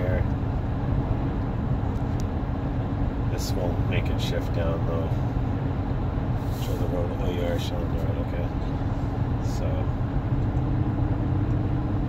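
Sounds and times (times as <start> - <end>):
road noise: 0.0 - 12.0
truck engine drone in cab: 0.0 - 12.0.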